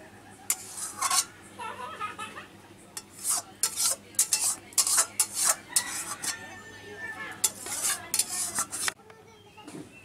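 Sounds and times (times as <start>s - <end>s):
spatula scraping steel pan: 0.5s - 1.4s, 3.0s - 6.6s, 7.2s - 9.0s.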